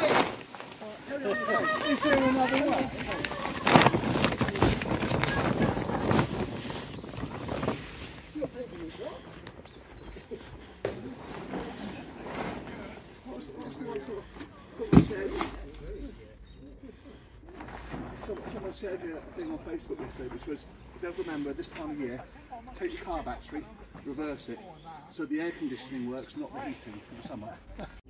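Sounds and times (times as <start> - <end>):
plastic tarpaulin rustling: 0.0 - 16.1.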